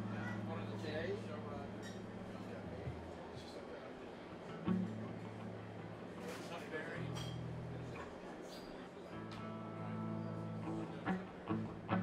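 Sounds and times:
faint voices: 0.0 - 7.1
amplified guitar low notes: 4.5 - 6.0, 9.1 - 12.0.

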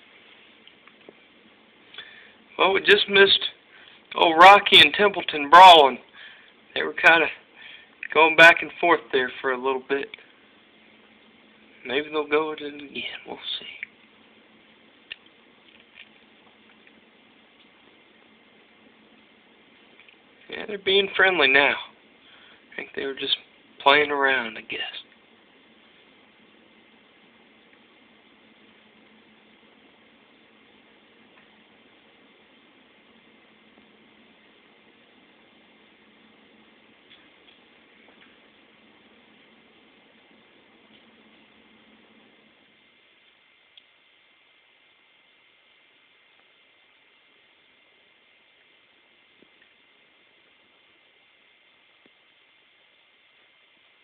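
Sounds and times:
faint steady hiss: 0.0 - 54.0.

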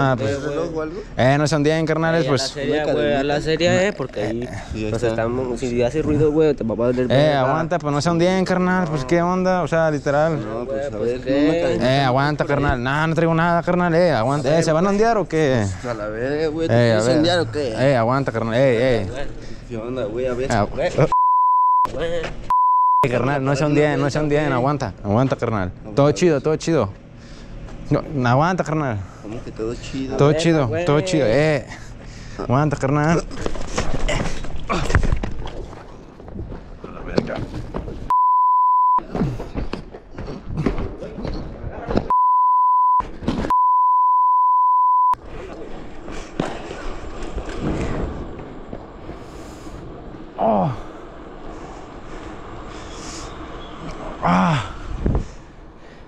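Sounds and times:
agitated voices: 0.0 - 7.8
censor bleep tone: 21.1 - 21.9, 22.5 - 23.1, 38.1 - 39.0, 42.1 - 45.2.

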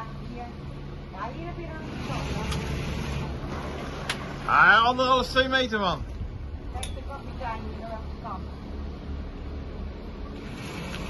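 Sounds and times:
boat engines rumbling: 0.0 - 11.0.

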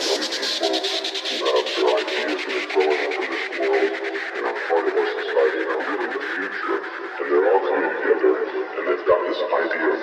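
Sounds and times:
fast hi-hat pattern: 0.0 - 6.4.

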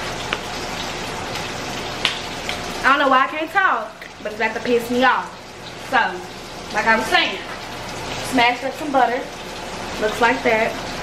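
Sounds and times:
chicken sizzling in a pan: 0.0 - 11.0.

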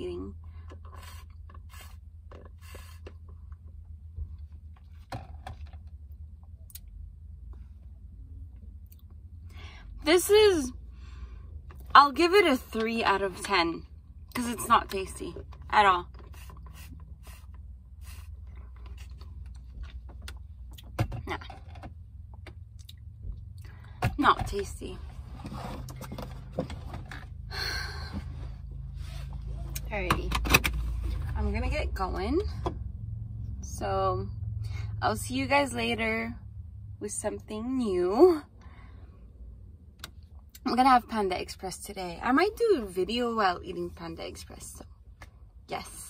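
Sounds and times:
low hum: 0.0 - 40.6
steady low rumble: 0.0 - 46.0.

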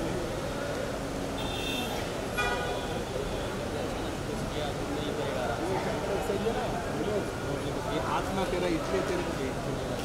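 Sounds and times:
crowd chatter: 0.0 - 10.0
street noise: 0.0 - 10.0.

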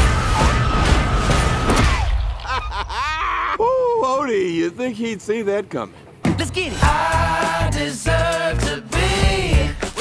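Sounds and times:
cartoon slam: 0.3 - 2.4.

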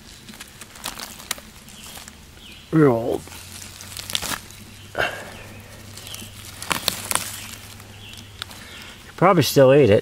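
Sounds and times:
dry leaves rustling and crackling: 0.0 - 9.2
faint steady low hum: 0.0 - 10.0.

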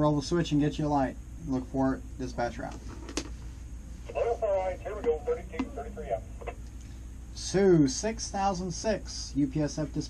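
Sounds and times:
speech over two-way radio: 4.1 - 6.6.

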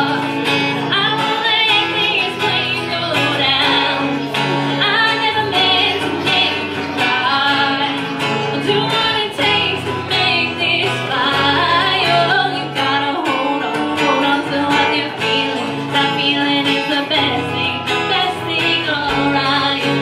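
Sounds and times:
man and woman singing: 0.0 - 20.0
strummed guitars: 0.0 - 20.0.

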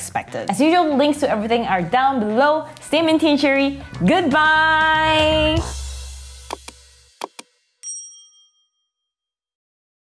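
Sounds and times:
bell-like ding: 7.8 - 9.3.

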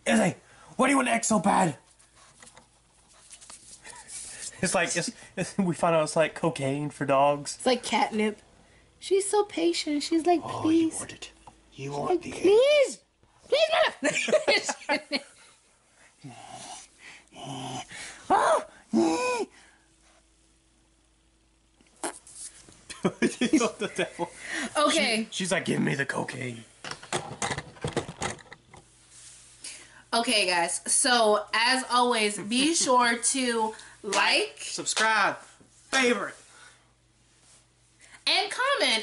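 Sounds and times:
whiny vocal cries: 17.4 - 19.6.

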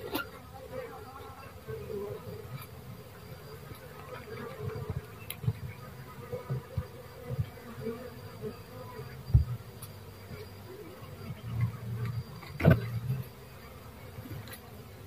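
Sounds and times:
bees buzzing: 0.0 - 15.0.

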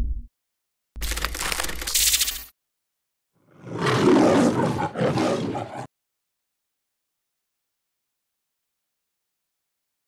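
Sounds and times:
lion roaring: 3.4 - 5.9.

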